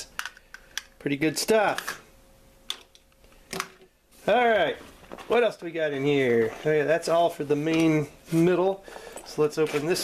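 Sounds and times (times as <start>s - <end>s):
soft handling sound: 2.8s - 10.0s.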